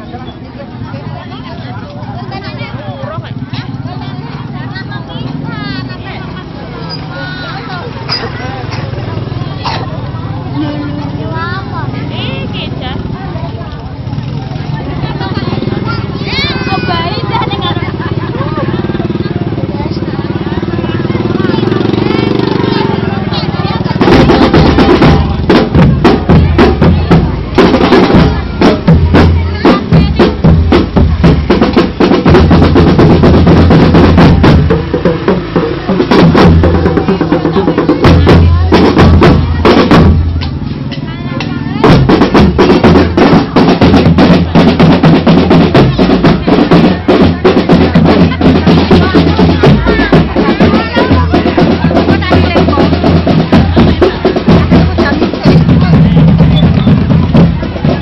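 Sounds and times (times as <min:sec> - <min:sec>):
crowd talking: 0:00.0 - 0:58.0
marching band drum line: 0:00.0 - 0:58.0.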